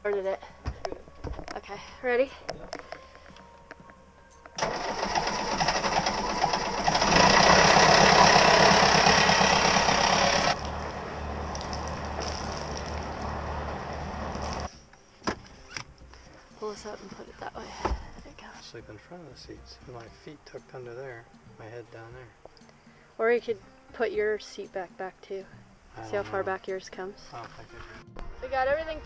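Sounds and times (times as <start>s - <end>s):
boat engine starting and running: 4.6s - 14.7s.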